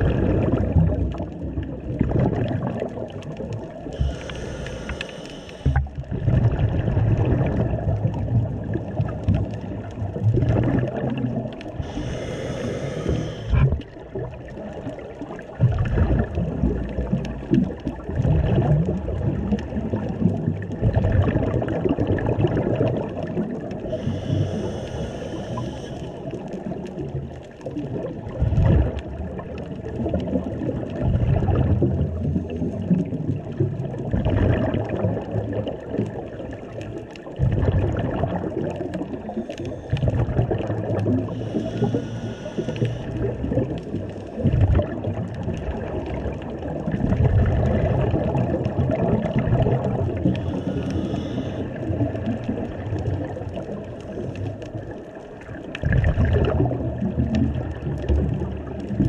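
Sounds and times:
gurgling exhaled bubbles: 0.0 - 59.0
regulator inhale hiss: 3.9 - 5.9, 11.8 - 13.8, 23.8 - 26.4, 39.2 - 40.2, 41.2 - 43.3, 50.2 - 51.9.

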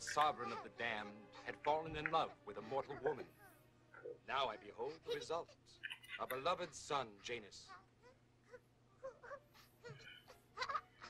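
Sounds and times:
animated baby cooing and whimpering: 0.0 - 11.0.

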